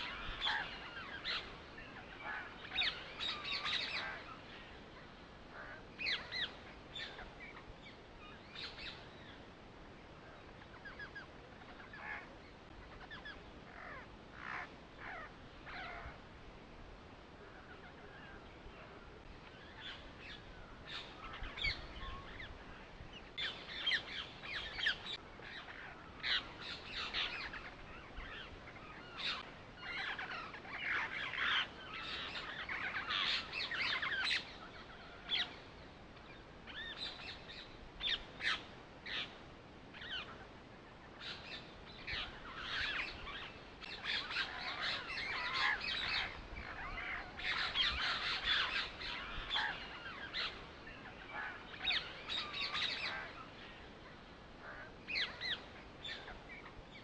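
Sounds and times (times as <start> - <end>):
birds chirping: 0.0 - 16.2, 17.2 - 57.0.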